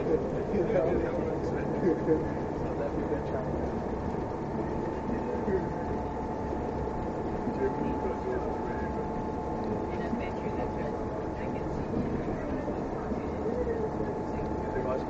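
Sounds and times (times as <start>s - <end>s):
people talking: 0.0s - 3.9s, 4.5s - 6.4s, 7.4s - 15.0s
bus engine and road rumble: 0.0s - 15.0s
constant thin tone: 0.0s - 15.0s.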